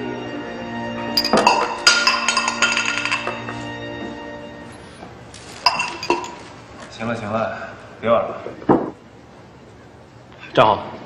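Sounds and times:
small hard object clinking: 1.2s - 3.5s, 5.4s - 6.6s.

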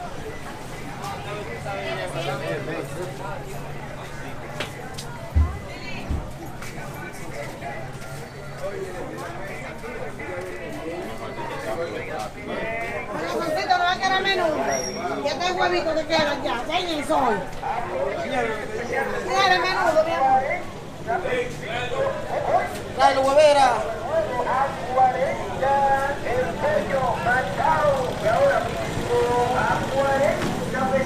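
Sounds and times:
people talking: 0.0s - 31.0s
vendor calling out: 11.3s - 31.0s.

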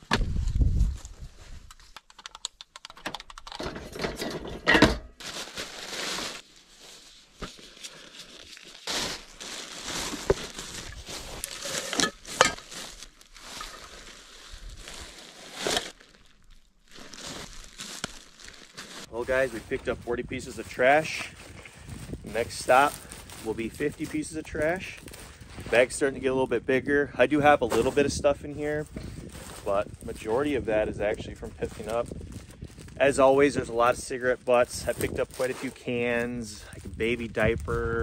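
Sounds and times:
handling clicks and knocks: 1.7s - 5.1s
plastic bag rustling: 5.1s - 26.0s, 27.5s - 37.7s.

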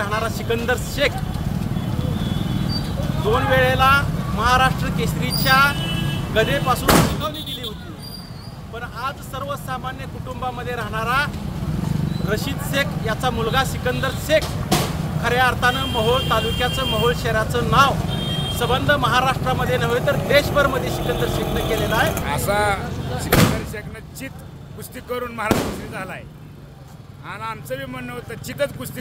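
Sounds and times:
street traffic rumble: 0.0s - 29.0s
sharp knock: 6.9s - 7.2s, 14.4s - 15.0s, 23.3s - 23.8s
man speaking: 18.6s - 26.3s.

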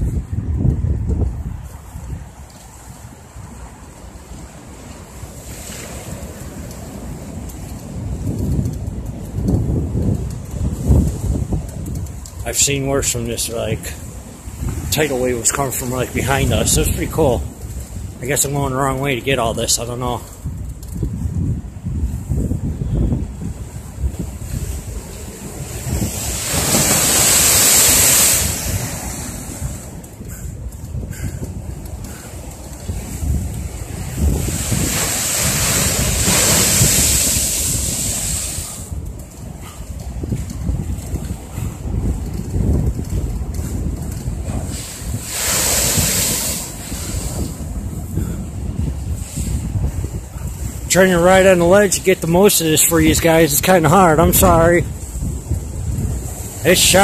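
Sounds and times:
wind buffeting microphone: 0.0s - 57.0s
waves splashing against seawall: 1.0s - 57.0s.

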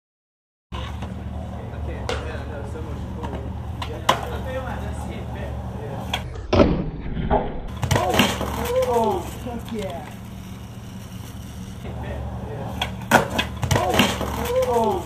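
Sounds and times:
skateboard rolling on asphalt: 0.7s - 6.4s, 7.7s - 15.0s
skateboard clattering: 0.7s - 6.6s, 7.7s - 15.0s
skateboard popping and landing: 3.2s - 4.5s, 6.0s - 12.0s, 12.6s - 15.0s
person falling on pavement: 7.7s - 9.3s.

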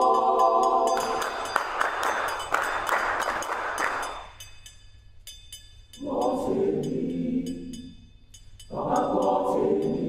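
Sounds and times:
people clapping: 1.0s - 4.2s.

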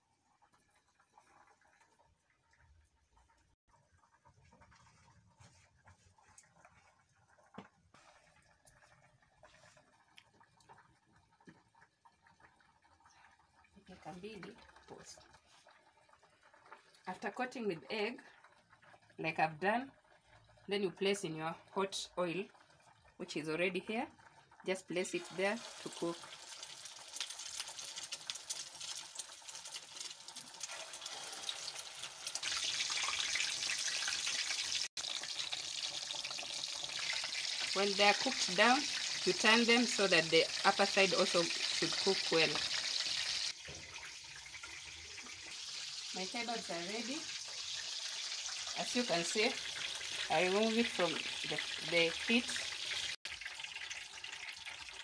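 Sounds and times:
hot oil sizzling and crackling: 7.5s - 55.0s.

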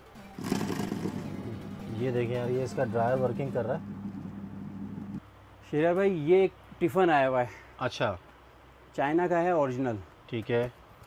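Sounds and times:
spin dryer motor humming: 0.4s - 5.2s.

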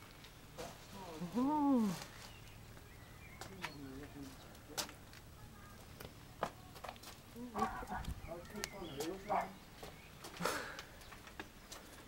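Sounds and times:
footsteps on paved path: 0.0s - 12.0s
person humming: 1.2s - 2.0s.

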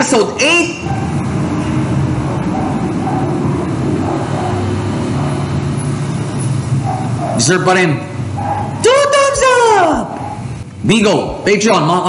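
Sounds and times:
steady low rumbling: 0.8s - 8.9s.

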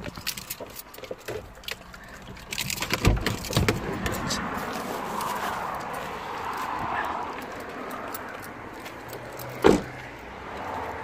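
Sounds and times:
car door opening clicks: 2.4s - 4.4s, 9.5s - 10.0s.

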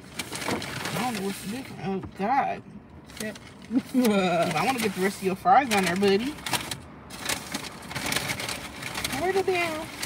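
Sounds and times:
paper bags rustling: 0.0s - 1.9s, 3.1s - 10.0s.

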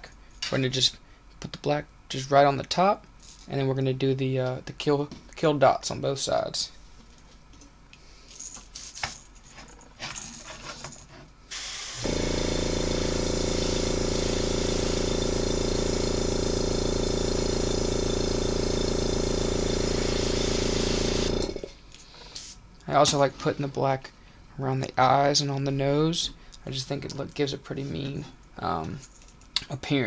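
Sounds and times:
airbrush air hiss: 11.5s - 12.3s, 22.3s - 22.6s
air compressor motor hum: 11.5s - 22.6s.

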